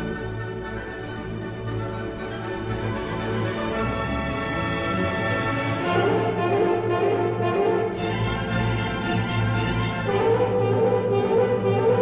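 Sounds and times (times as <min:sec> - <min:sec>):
brass section: 0:00.0 - 0:12.0
symphony orchestra playing: 0:00.0 - 0:12.0.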